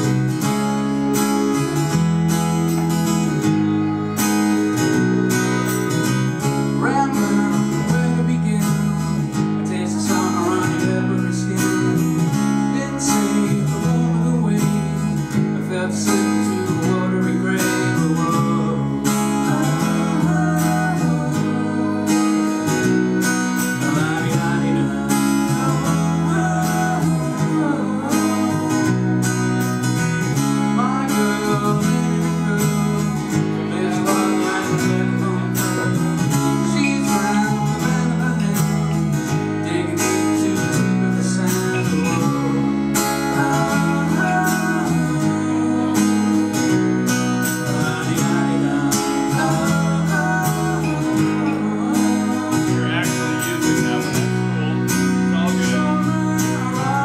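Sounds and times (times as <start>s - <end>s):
accordion chords: 0.0s - 57.0s
strummed acoustic guitar: 0.0s - 57.0s
person singing: 3.2s - 57.0s.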